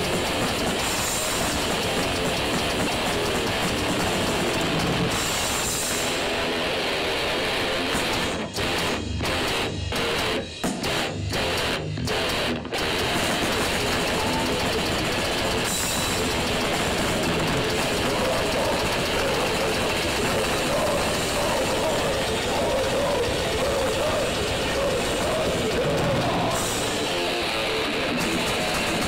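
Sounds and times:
grindcore band playing live: 0:00.0 - 0:29.0.

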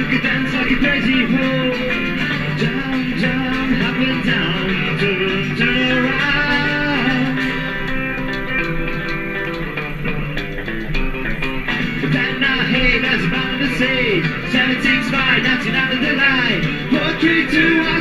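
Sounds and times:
acoustic rhythm guitar: 0:00.0 - 0:18.0
electric lead guitar: 0:00.0 - 0:18.0
upright double bass: 0:00.0 - 0:18.0.

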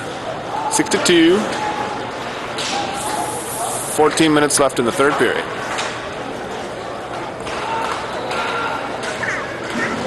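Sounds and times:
hiss: 0:03.0 - 0:04.0.

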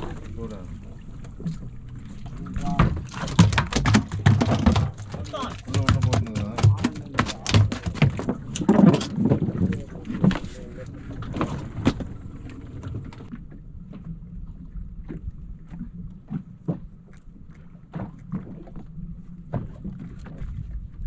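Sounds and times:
boat engine rumbling: 0:00.0 - 0:21.0.

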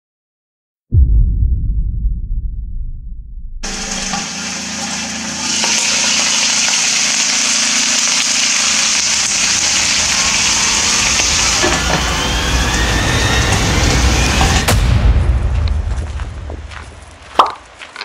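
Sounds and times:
fish sizzling in frying pan: 0:03.7 - 0:12.0
oil pops and crackles: 0:16.7 - 0:18.0.

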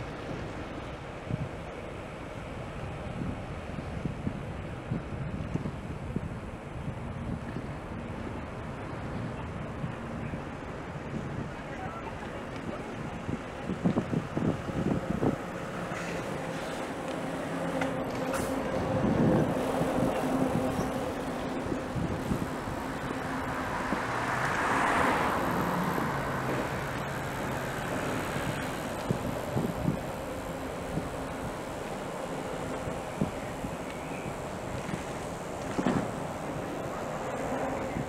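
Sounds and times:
city street traffic: 0:00.0 - 0:38.0
wind noise: 0:00.0 - 0:38.0
vehicle passing: 0:14.4 - 0:38.0.

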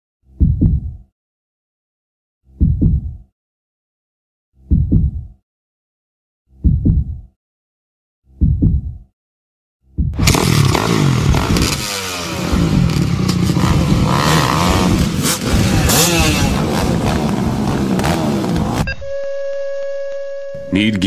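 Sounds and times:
dirt bikes revving: 0:10.2 - 0:18.9
high-pitched hum: 0:18.8 - 0:21.0.

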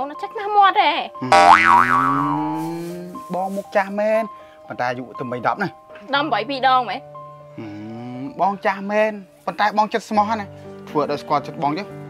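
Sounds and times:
cartoon boing: 0:01.2 - 0:02.6
person speaking: 0:01.2 - 0:03.3.

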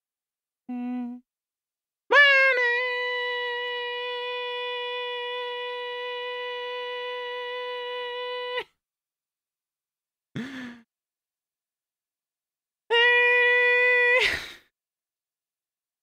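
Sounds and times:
person singing long note: 0:02.2 - 0:08.6.

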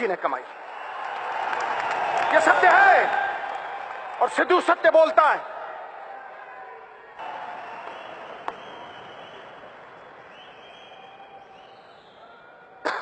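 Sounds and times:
audience applause: 0:00.6 - 0:05.0, 0:05.6 - 0:13.0.

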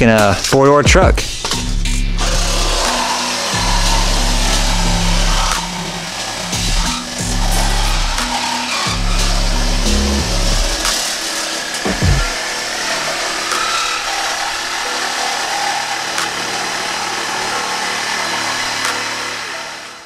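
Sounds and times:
reciprocating saw cutting sheet metal: 0:01.2 - 0:20.0.

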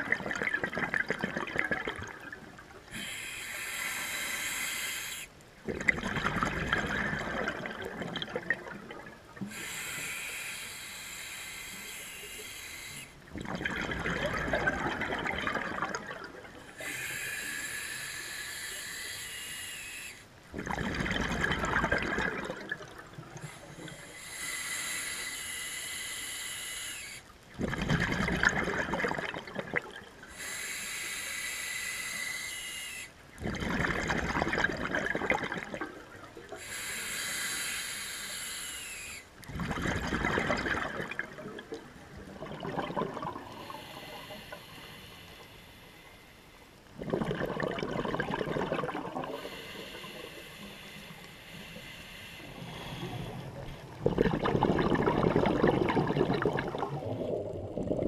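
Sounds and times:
exhaled bubbles: 0:00.0 - 0:03.3, 0:05.6 - 0:10.1, 0:12.8 - 0:17.2, 0:20.5 - 0:24.0, 0:27.5 - 0:30.3, 0:33.4 - 0:36.7, 0:39.1 - 0:44.6, 0:46.8 - 0:50.7, 0:52.4 - 0:58.0
hissing inhale through regulator: 0:02.9 - 0:05.4, 0:09.4 - 0:13.3, 0:16.6 - 0:21.0, 0:23.3 - 0:27.3, 0:30.2 - 0:33.2, 0:36.5 - 0:41.4, 0:42.7 - 0:58.0.

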